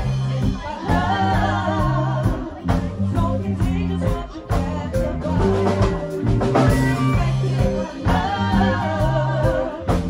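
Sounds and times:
steady bass line: 0:00.0 - 0:10.0
women singing together: 0:00.0 - 0:10.0.

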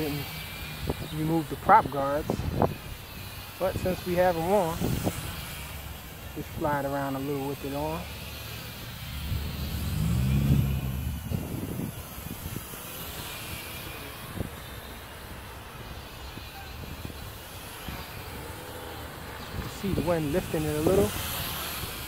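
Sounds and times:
toy drone motor whine: 0:00.1 - 0:22.0
wind on microphone: 0:00.8 - 0:05.7, 0:09.1 - 0:15.0
vehicle engine passing: 0:04.0 - 0:15.8, 0:17.5 - 0:22.0.

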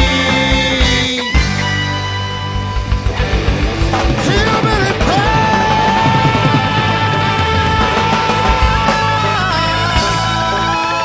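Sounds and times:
hard rock music: 0:00.0 - 0:11.0
drum and bass beat: 0:02.6 - 0:10.5.

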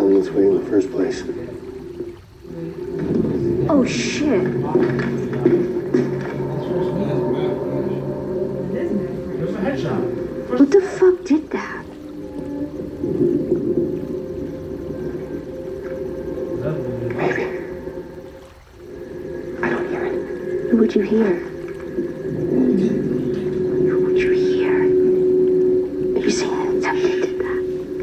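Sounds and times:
low droning soundtrack tones: 0:00.0 - 0:28.0
sharp soundtrack sounds: 0:13.1 - 0:28.0.

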